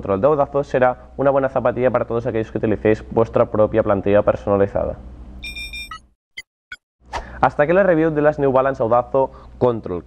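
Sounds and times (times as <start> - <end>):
electronic chime ding: 5.4 - 6.0.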